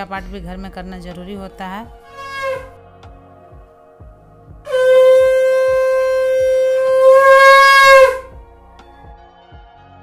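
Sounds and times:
conch shell blown: 2.1 - 2.8, 4.6 - 8.4.

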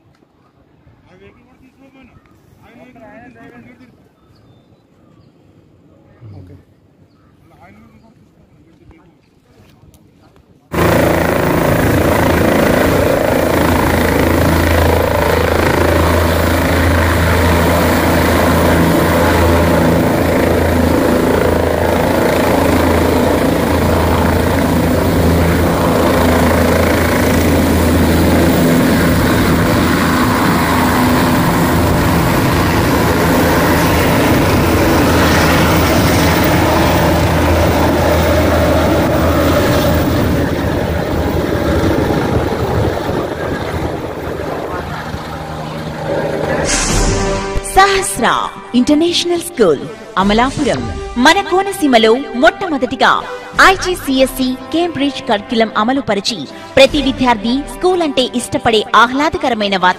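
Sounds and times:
helicopter rotor and engine: 10.7 - 59.9.

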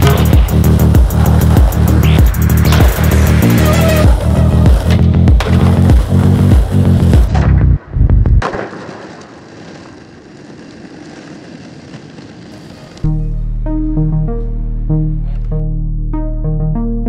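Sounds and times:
music with heavy beat: 0.0 - 7.3
skateboard wheels rolling on concrete: 0.0 - 13.1
skateboard landing clack: 8.4 - 12.5.

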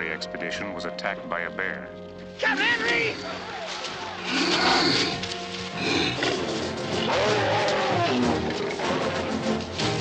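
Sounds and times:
dramatic orchestral film music: 0.0 - 10.0.

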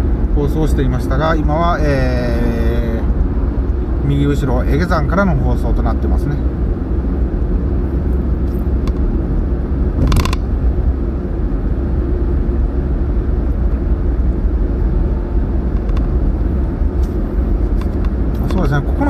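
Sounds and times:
tyre and engine rumble inside car: 0.0 - 19.0.

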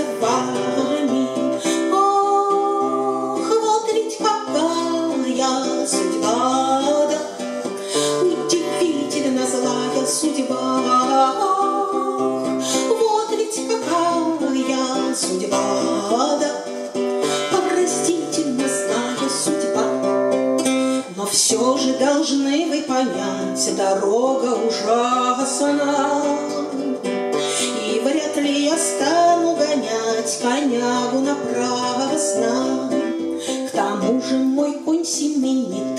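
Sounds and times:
acoustic guitar strumming: 0.0 - 35.9
woman singing: 0.0 - 35.9.

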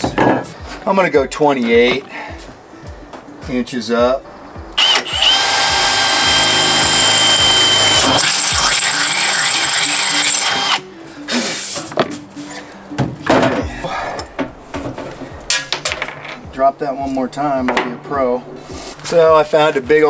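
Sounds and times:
cordless drill whining: 4.8 - 10.9.

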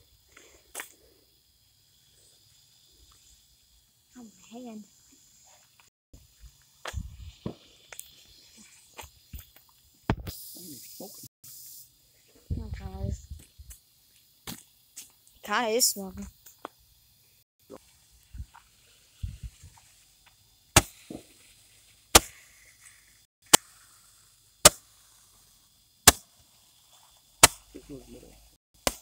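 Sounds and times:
brief hiss: 6.5 - 13.8.

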